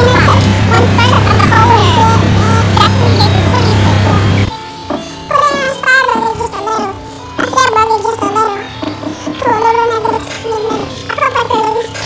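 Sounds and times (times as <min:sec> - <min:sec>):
high-pitched sped-up singing voice: 0:00.0 - 0:12.0.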